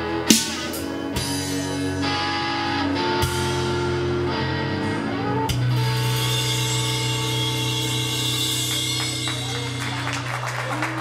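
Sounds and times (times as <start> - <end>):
band last hit: 0.3 - 1.4.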